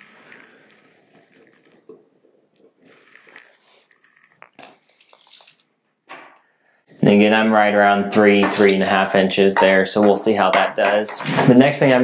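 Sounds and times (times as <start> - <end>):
soft rustling: 0.0 - 5.6.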